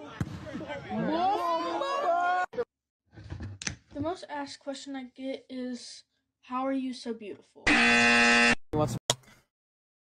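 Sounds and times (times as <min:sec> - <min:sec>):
electronic buzzer: 0:07.7 - 0:08.6.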